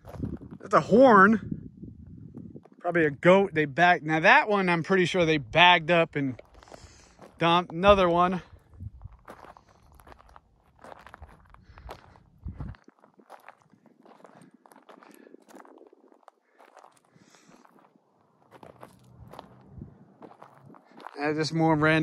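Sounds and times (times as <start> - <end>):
footsteps crunching on gravel: 0.0 - 0.6, 6.2 - 22.0.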